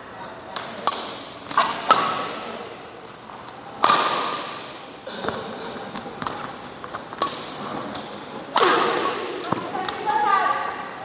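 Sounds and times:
racket striking shuttlecock: 0.5 - 2.5, 3.8 - 5.5, 6.2 - 10.0.

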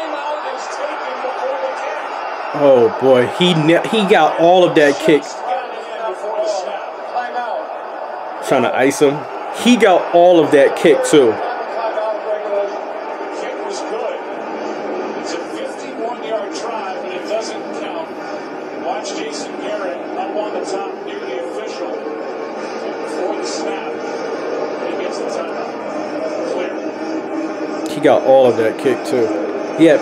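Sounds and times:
crowd noise: 0.0 - 30.0
commentators talking: 2.5 - 7.1, 8.4 - 12.7, 27.8 - 30.0.

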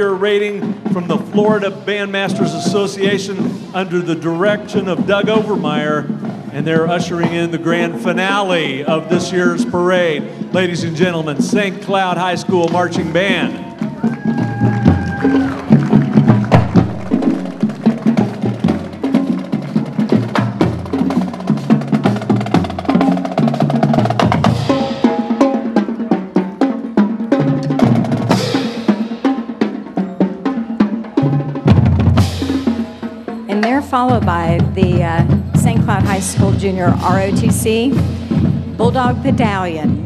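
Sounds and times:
snare and bass drums beating: 0.0 - 40.0
brass horns playing: 13.0 - 19.2, 20.3 - 39.4.

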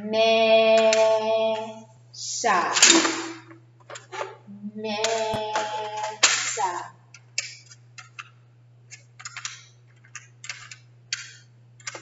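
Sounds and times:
letter tiles clicking: 9.2 - 12.0.

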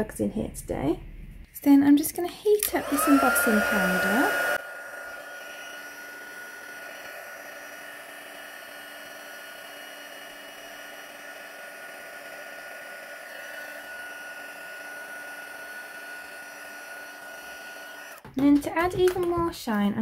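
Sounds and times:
heat gun blowing air: 2.6 - 18.3.

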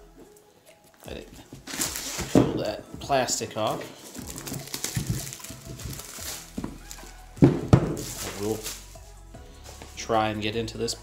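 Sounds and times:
plastic shrink wrap crackling: 1.6 - 8.9.

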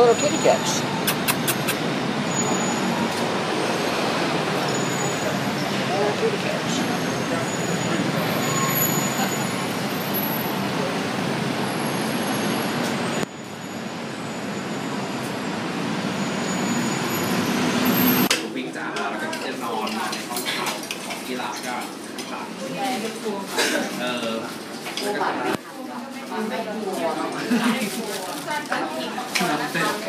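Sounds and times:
traffic rumble and hiss: 0.0 - 25.6.

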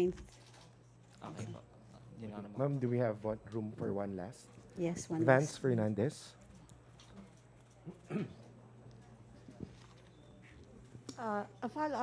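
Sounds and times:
person coughing: 7.9 - 8.5.

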